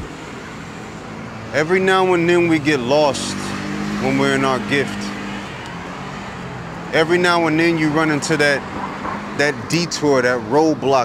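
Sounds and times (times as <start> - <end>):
passing cars: 0.0 - 11.0.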